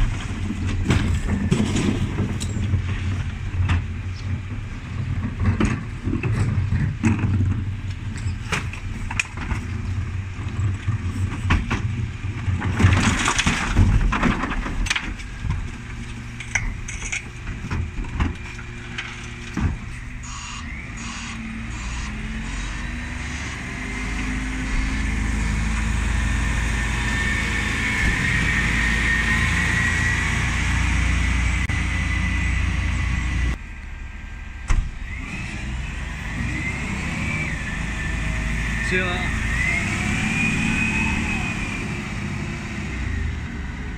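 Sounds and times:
diesel lorry engine rumble: 0:00.0 - 0:43.9.

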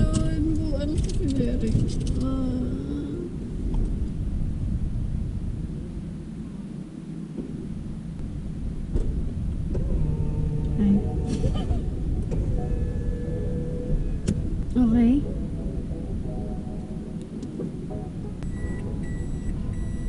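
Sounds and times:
car engine idling: 0:07.4 - 0:20.0.

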